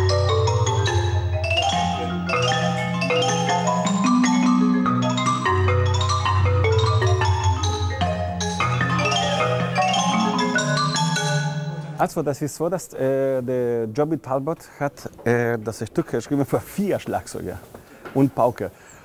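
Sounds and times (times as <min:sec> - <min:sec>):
marimba and xylophone ensemble: 0:00.0 - 0:12.2
low marimba rolls: 0:00.0 - 0:12.3.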